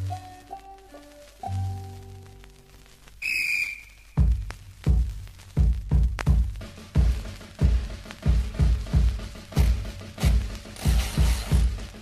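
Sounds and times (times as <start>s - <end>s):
high flute note: 3.2s - 4.3s
ensemble music: 4.1s - 12.0s.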